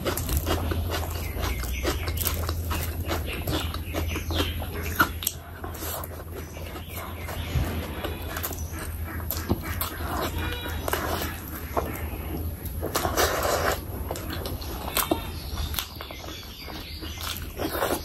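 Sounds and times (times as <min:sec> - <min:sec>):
fingers squelching curry and rice: 0:00.0 - 0:18.0
wet chewing and lip-smacking: 0:00.0 - 0:18.0.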